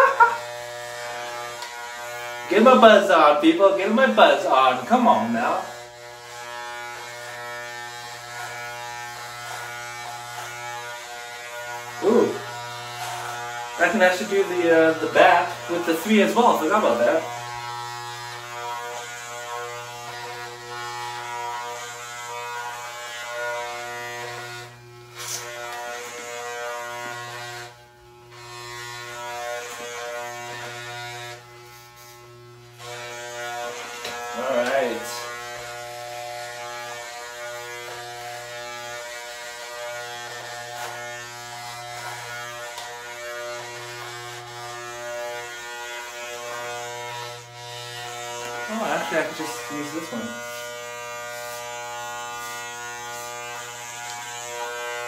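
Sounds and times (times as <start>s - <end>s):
electric hair clippers buzzing: 0.0s - 55.0s.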